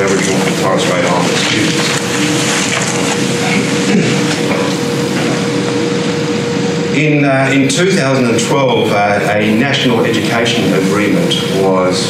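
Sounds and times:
speech: 0.0s - 2.0s, 6.9s - 12.0s
constant low hum: 0.0s - 12.0s.

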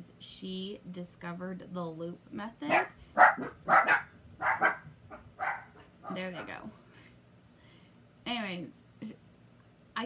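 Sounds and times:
dogs barking: 2.7s - 6.6s.

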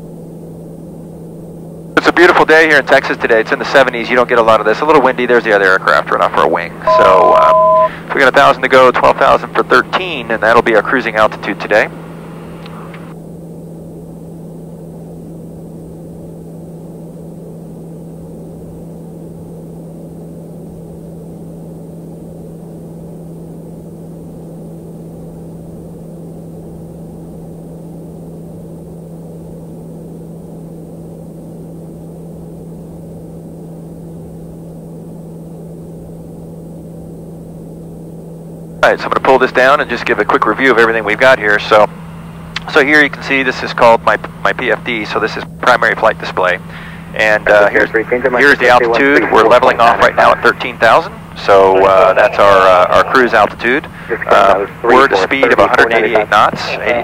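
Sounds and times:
propeller engine drone: 0.0s - 57.0s.

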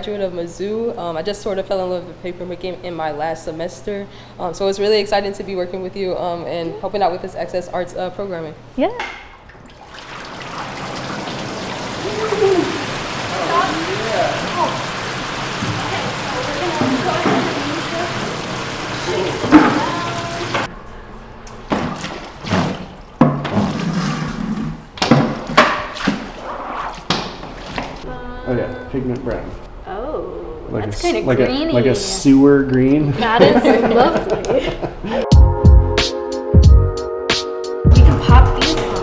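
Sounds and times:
water rushing into vat: 9.3s - 20.7s, 21.8s - 28.0s.

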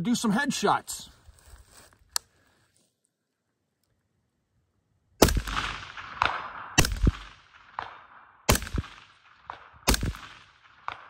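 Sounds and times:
suppressed rifle shot echoing: 5.2s - 11.0s.

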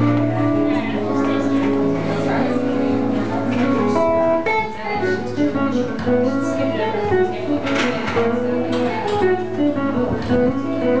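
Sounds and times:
electric guitar through amplifier: 0.0s - 11.0s.

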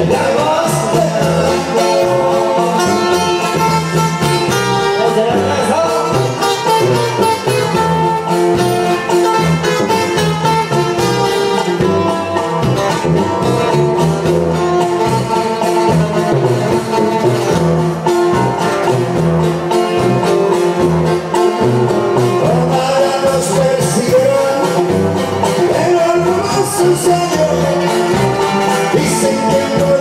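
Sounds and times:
bass line: 0.0s - 30.0s
guitar melody: 0.0s - 30.0s
live band instrumental: 0.0s - 30.0s
steady drum beat: 0.0s - 30.0s.

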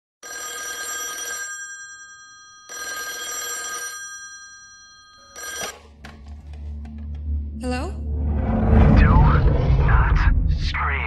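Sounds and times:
telephone ringing: 0.2s - 6.0s.

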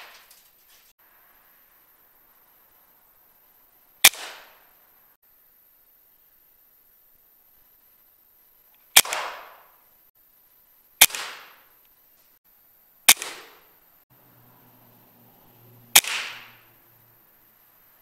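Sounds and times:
air rifle shots: 4.0s - 4.6s, 9.0s - 9.8s, 11.0s - 11.7s, 13.1s - 13.7s, 15.9s - 16.7s.

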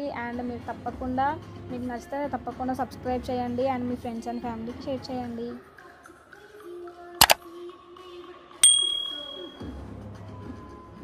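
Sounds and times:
notification bell ding: 8.6s - 9.7s.

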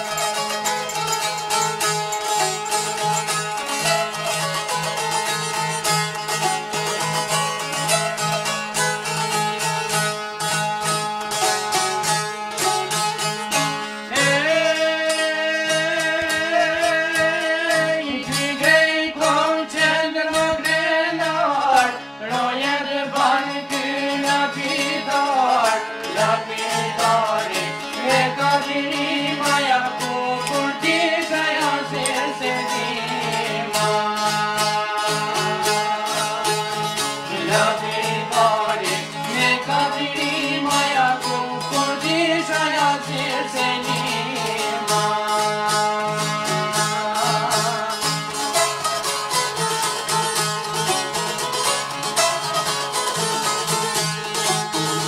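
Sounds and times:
plucked string instruments: 0.0s - 55.0s
man singing: 14.1s - 48.8s.

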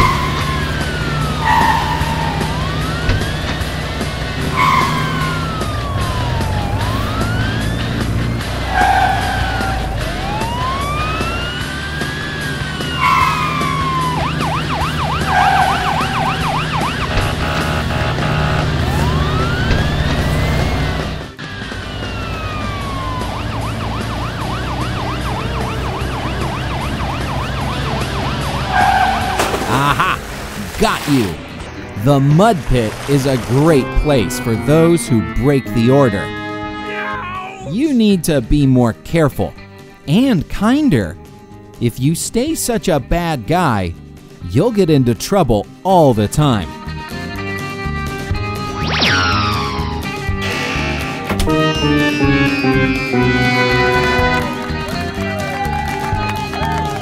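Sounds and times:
police siren wailing: 0.0s - 30.1s, 33.8s - 37.7s, 48.6s - 57.0s
short bright tones: 48.7s - 54.4s.

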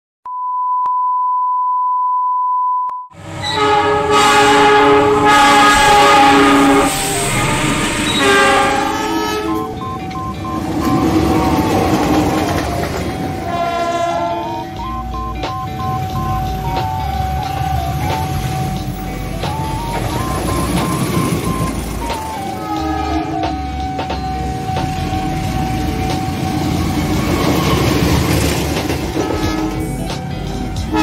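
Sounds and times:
steady beep tone: 0.3s - 3.1s, 8.9s - 13.5s, 14.4s - 28.6s
train noise: 3.2s - 31.0s
locomotive air horn blasts: 3.4s - 9.8s, 13.3s - 14.9s, 22.5s - 23.6s, 29.1s - 30.0s
music with stepping melody: 8.7s - 13.6s, 14.3s - 31.0s.

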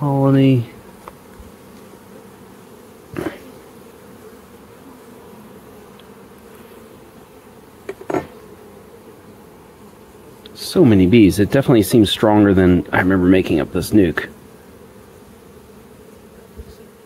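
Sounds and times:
honeybees humming: 0.0s - 17.0s.

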